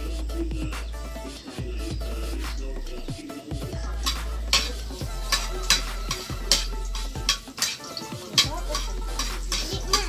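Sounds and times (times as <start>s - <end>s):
food sizzling: 0.9s - 10.0s
metal spatula scraping a frying pan: 4.0s - 10.0s.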